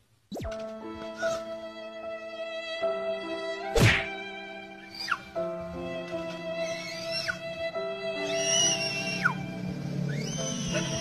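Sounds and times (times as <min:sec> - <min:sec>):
background music with held notes: 0:00.4 - 0:11.0
loud whack: 0:03.8 - 0:04.1.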